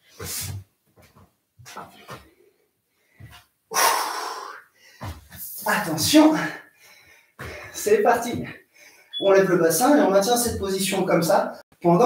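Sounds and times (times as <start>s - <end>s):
man breathing with effort: 1.9s - 5.3s, 6.5s - 7.8s, 8.6s - 9.2s.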